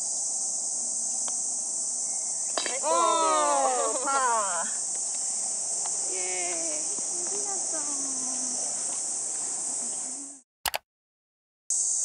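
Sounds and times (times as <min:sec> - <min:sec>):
insects droning: 0:00.0 - 0:10.4, 0:11.7 - 0:12.0
woman's drawn-out voice: 0:06.1 - 0:08.6.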